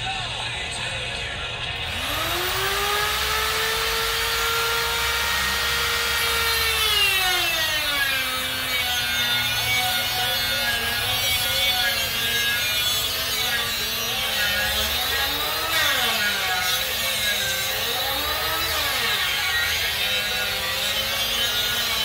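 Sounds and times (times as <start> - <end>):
angle grinder whining: 1.7 - 22.0
grinder disc cutting metal: 1.8 - 22.0.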